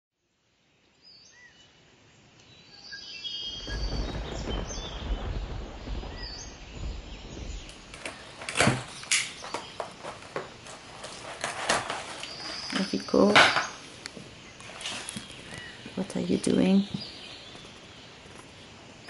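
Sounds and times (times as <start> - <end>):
small birds chirping: 0.7 - 19.0
wind rumbling on microphone: 3.5 - 13.5
sharp clicks of pieces handled: 8.0 - 10.4.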